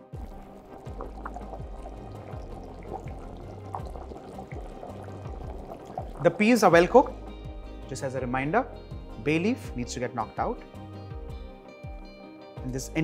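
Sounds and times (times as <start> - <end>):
background music: 0.0 - 13.0
peas bubbling in water: 0.1 - 7.4.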